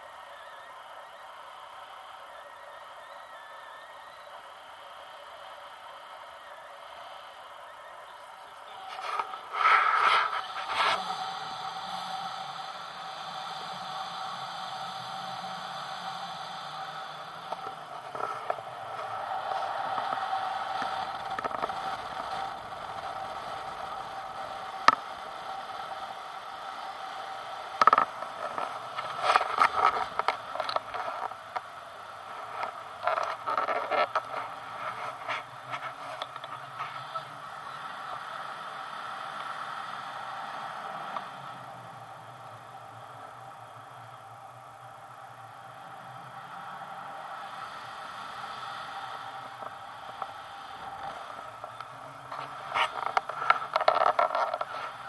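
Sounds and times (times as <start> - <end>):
hand scraping and rubbing pole: 8.8 - 22.5, 50.1 - 55.0.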